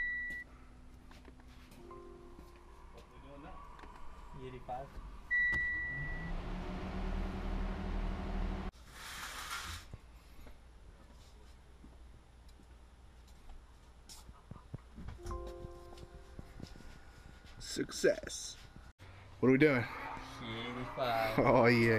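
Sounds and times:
chime of steady tones: 1.8 - 3.4, 15.2 - 17.0
short electronic beep: 5.3 - 6.3
low hum rising in pitch: 5.7 - 8.7.

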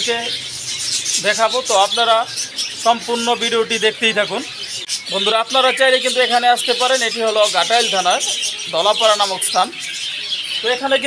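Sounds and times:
caged birds chirping: 0.0 - 11.0
man talking: 1.2 - 9.9, 10.6 - 11.0.

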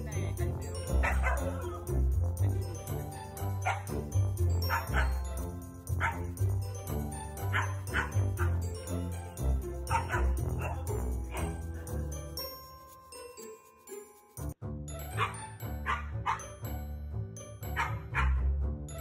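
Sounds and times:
music with chiming melody: 0.0 - 19.0
dogs barking: 0.9 - 1.7, 3.6 - 4.0, 4.6 - 5.4, 6.0 - 6.4, 7.4 - 8.7, 9.9 - 11.9, 15.2 - 16.5, 17.7 - 18.4.

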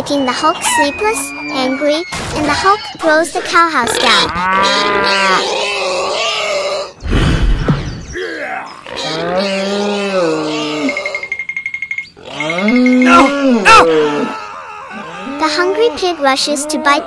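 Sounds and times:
low thud: 7.0 - 8.2
cartoon groans: 8.2 - 11.2, 12.4 - 17.0.

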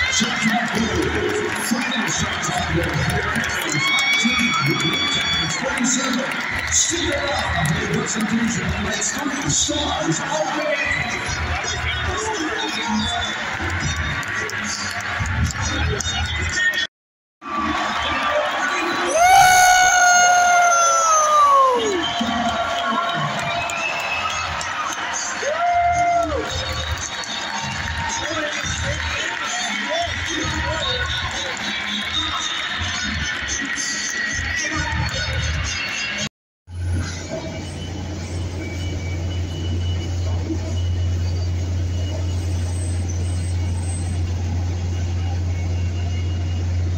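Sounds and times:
crowd cheering: 0.0 - 36.3
music over loudspeakers: 24.4 - 36.3.

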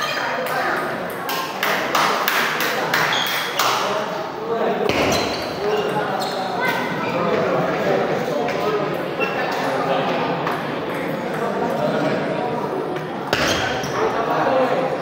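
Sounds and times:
people chattering: 0.0 - 15.0.

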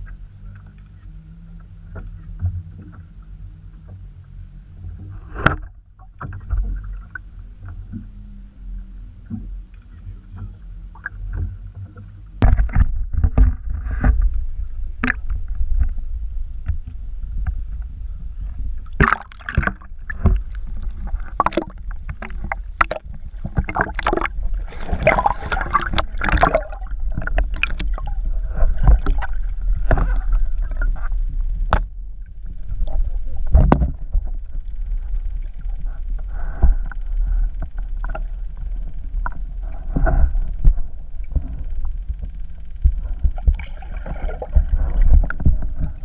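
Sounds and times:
steady deep rumble: 0.0 - 46.0
water splashing against boat: 0.0 - 46.0
knocks against hull: 11.3 - 14.4, 33.5 - 34.4.

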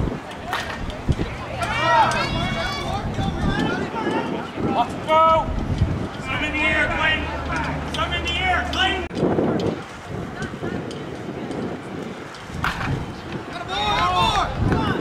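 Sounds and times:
background chatter: 0.0 - 15.0
voices shouting and calling out: 0.1 - 15.0.

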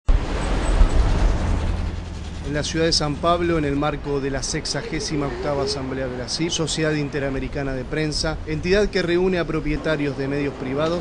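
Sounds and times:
cars driving past: 0.1 - 11.0.

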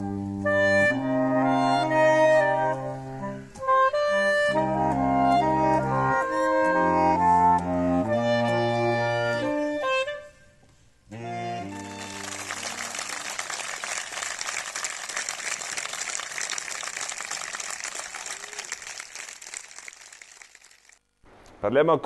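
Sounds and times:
saxophone quartet chord: 11.1 - 13.4
audience applause: 11.8 - 21.0.

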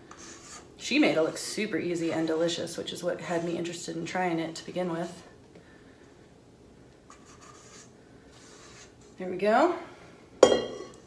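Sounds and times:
batter scraped from metal bowl: 0.0 - 0.7.

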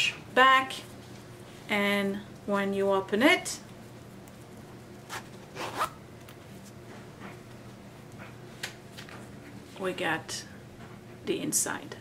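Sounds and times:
zipper being pulled open: 5.1 - 6.0.

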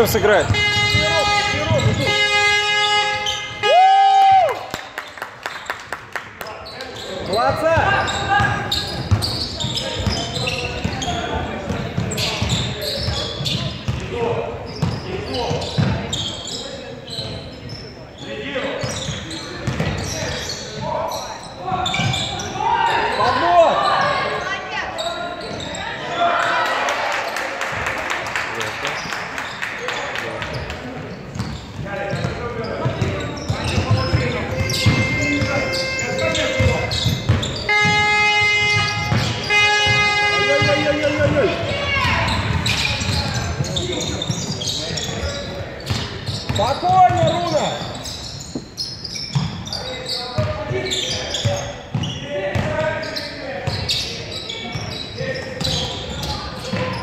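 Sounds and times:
basketball bouncing on court: 0.2 - 2.2, 7.5 - 16.2, 18.8 - 20.2, 31.3 - 38.0, 38.8 - 40.0, 40.6 - 49.7, 51.4 - 52.8
high-pitched shoe squeaks: 0.2 - 3.7, 6.6 - 11.4, 12.0 - 14.0, 14.7 - 24.4, 31.3 - 57.0
echoing voices: 6.5 - 48.8.

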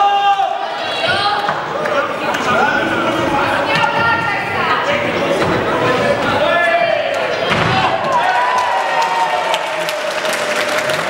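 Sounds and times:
men shouting in echoing hall: 0.0 - 1.4.

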